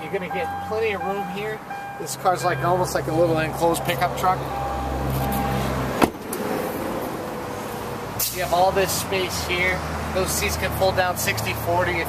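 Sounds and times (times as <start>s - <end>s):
car latch clunk: 6.0s - 6.4s.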